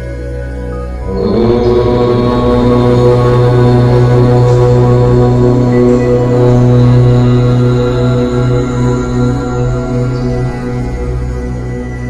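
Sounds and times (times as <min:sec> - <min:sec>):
low voice chanting om: 0:00.0 - 0:12.0
steady drone: 0:00.0 - 0:12.0.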